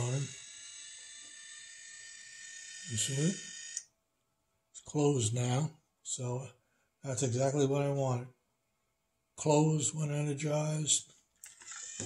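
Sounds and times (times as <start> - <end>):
small electric motor whining: 0.0 - 3.9, 11.5 - 12.0.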